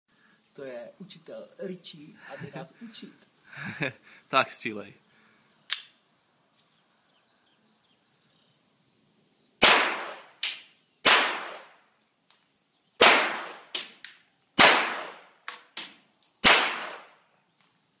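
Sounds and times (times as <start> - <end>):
pistol shots: 9.6 - 11.7, 13.0 - 13.9, 14.6 - 15.3, 16.4 - 17.2
fainter sharp cracks: 13.0 - 17.2.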